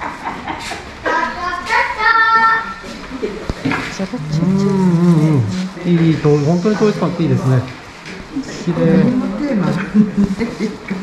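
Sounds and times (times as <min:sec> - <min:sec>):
low voice humming: 0:04.0 - 0:05.8.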